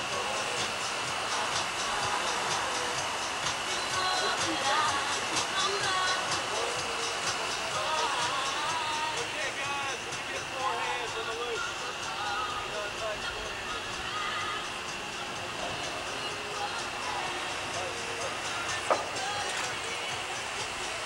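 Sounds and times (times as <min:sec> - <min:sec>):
background music: 0:00.0 - 0:21.0
distant voices calling out: 0:00.0 - 0:21.0
steady high-pitched hum: 0:00.0 - 0:21.0.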